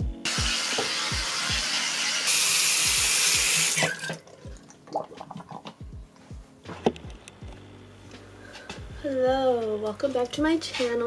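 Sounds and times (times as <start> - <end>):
background music with low beat: 0.0 - 1.9, 2.5 - 11.0
sink tap running: 0.3 - 4.2.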